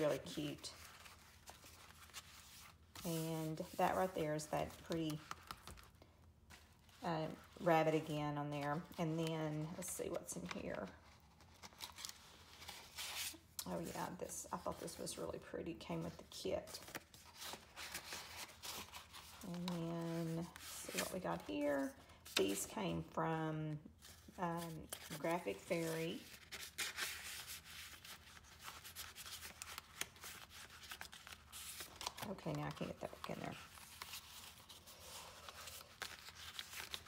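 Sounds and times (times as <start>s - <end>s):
paper and card rustling: 0.0s - 23.2s, 23.9s - 37.0s.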